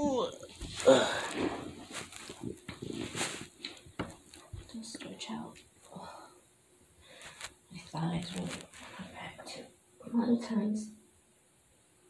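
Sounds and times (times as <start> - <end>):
rustling: 0.4 - 4.8, 7.0 - 9.4
woman's effort sounds and breaths: 0.7 - 1.8.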